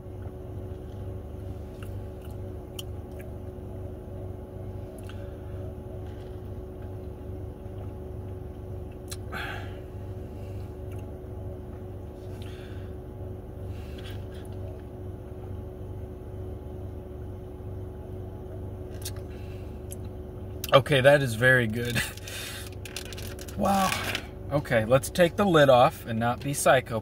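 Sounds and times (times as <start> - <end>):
low hum inside car: 0.0 - 27.0.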